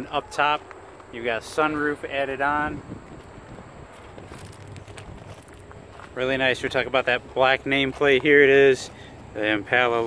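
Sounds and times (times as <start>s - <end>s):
footsteps on gravel: 0.4s - 10.0s
wind rumbling on microphone: 1.6s - 6.9s.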